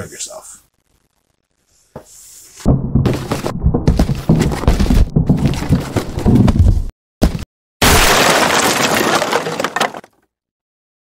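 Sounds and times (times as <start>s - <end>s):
dense crash: 2.6s - 6.9s
cracks and impacts: 2.6s - 10.2s.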